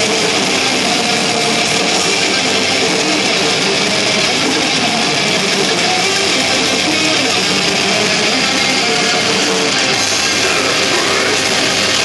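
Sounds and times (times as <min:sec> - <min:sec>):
bass: 0:00.0 - 0:12.0
distorted electric guitars: 0:00.0 - 0:12.0
drums: 0:00.0 - 0:12.0.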